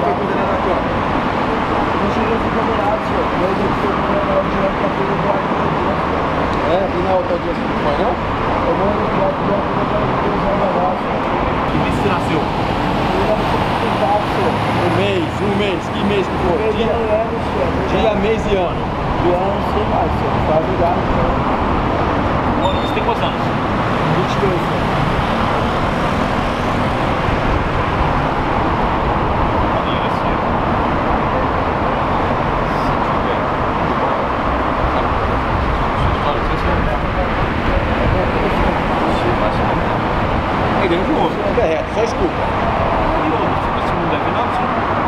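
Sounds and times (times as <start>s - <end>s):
bus passing: 0.0s - 45.0s
low voices: 0.0s - 45.0s
road traffic: 0.0s - 45.0s.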